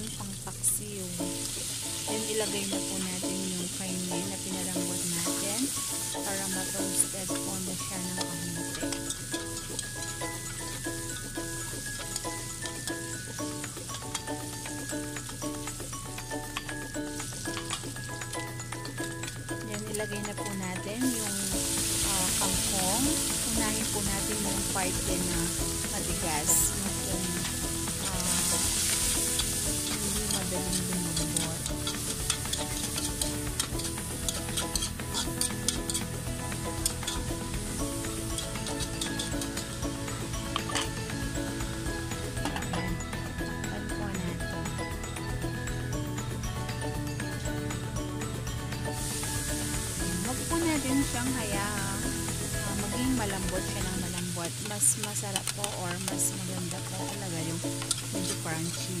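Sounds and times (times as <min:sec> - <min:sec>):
food sizzling in a wok: 0:00.0 - 0:59.0
light background music: 0:00.0 - 0:59.0
metal spatula scraping pan: 0:25.0 - 0:39.8
spatula clicking on metal: 0:54.1 - 0:56.9, 0:57.8 - 0:58.4.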